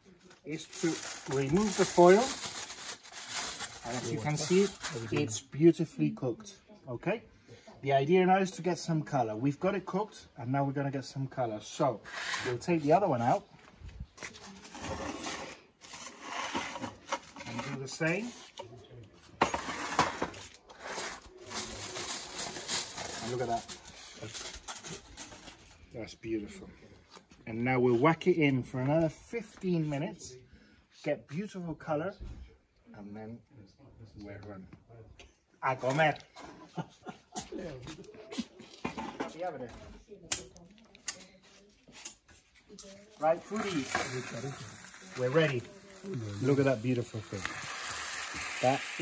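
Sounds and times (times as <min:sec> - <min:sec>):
aluminium foil crinkling: 0:00.2 - 0:05.2, 0:20.4 - 0:25.8, 0:42.7 - 0:49.0.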